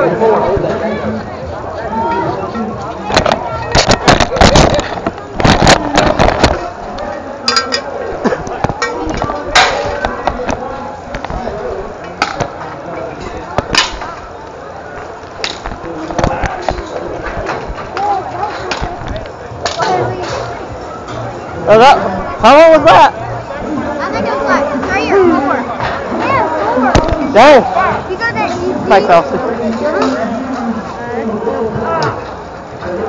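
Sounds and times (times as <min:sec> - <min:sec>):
murmur of voices: 0:00.0 - 0:33.0
scattered bumps: 0:03.1 - 0:06.8.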